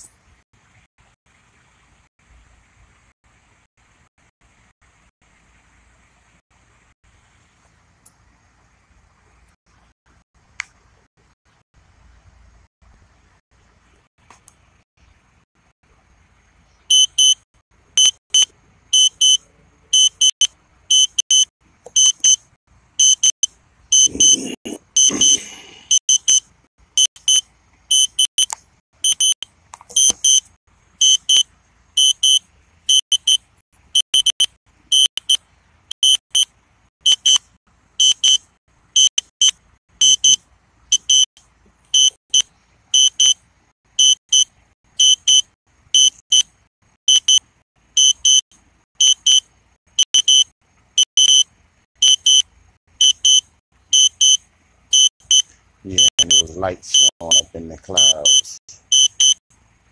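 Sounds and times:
short high electronic beeps: 18.0s - 19.4s, 20.0s - 22.4s, 23.0s - 24.4s, 25.0s - 26.4s, 27.0s - 31.4s, 32.0s - 33.4s, 34.0s - 35.4s, 36.0s - 37.4s, 38.0s - 38.4s, 39.0s - 41.3s, 42.0s - 43.4s, 44.0s - 46.5s, 47.1s - 47.4s, 48.0s - 48.4s, 49.0s - 49.4s, 50.0s - 51.4s, 52.0s - 52.4s, 53.0s - 59.4s.

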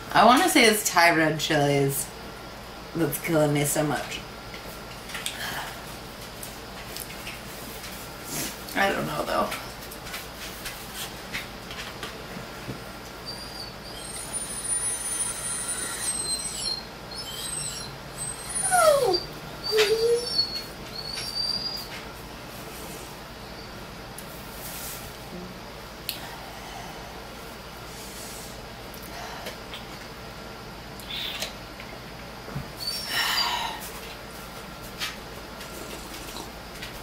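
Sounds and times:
dog whining: 13.2s - 22.0s, 32.8s - 33.8s.

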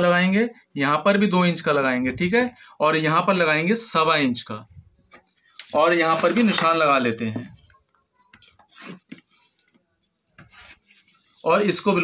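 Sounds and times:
chalk scratching across cloth: 8.6s - 9.7s, 10.3s - 11.8s.

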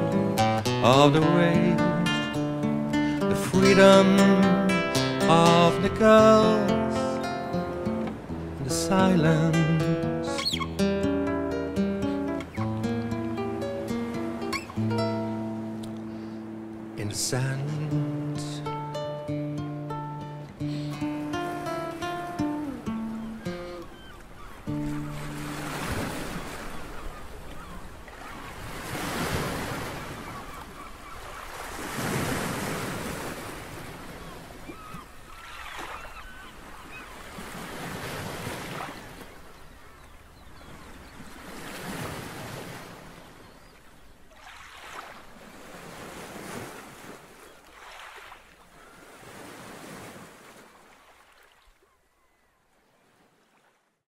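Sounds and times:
waves washing onto beach: 0.0s - 10.8s, 20.1s - 51.9s
acoustic guitar notes: 0.0s - 24.0s, 24.6s - 25.7s.

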